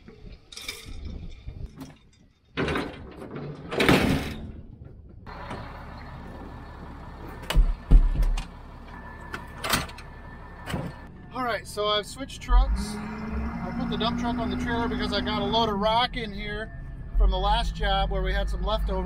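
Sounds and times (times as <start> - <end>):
truck engine running: 5.3 - 19.0.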